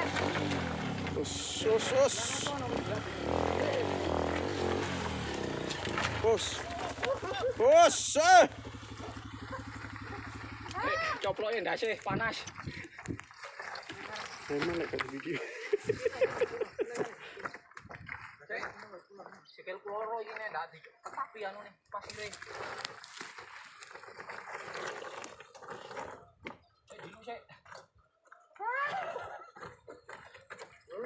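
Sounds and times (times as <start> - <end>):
dirt bike on boulders: 0.0 - 12.6
people calling out: 1.2 - 4.1, 6.0 - 11.4, 28.6 - 29.4.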